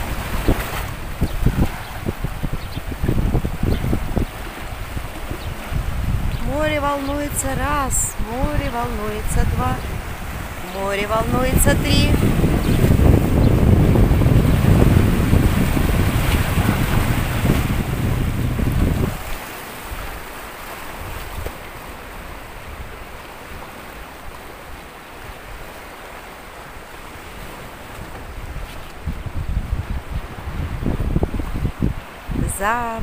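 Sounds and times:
waves washing over rocks: 0:00.0 - 0:33.0
wind buffeting microphone: 0:00.0 - 0:33.0.

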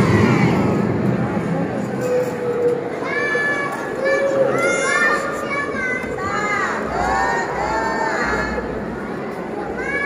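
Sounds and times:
children shouting: 0:02.0 - 0:08.7, 0:09.6 - 0:10.0.

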